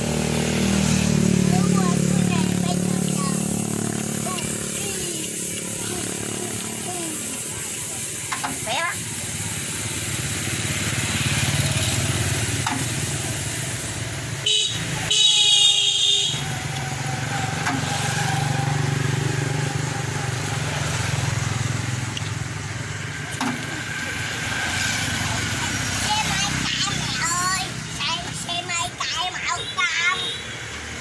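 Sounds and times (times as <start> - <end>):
tractor horn: 14.4 - 16.7.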